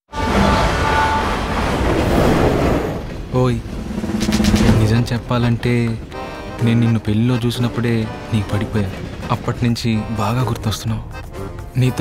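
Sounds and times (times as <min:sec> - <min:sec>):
train wheels on rails: 0:00.3 - 0:11.0.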